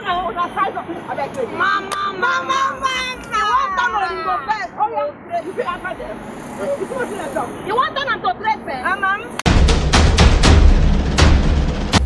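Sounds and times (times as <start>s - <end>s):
women singing and calling out: 0.0s - 9.4s.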